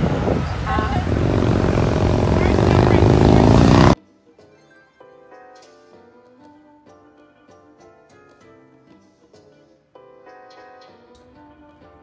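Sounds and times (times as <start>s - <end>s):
coach diesel engine pulling away: 0.0s - 4.0s.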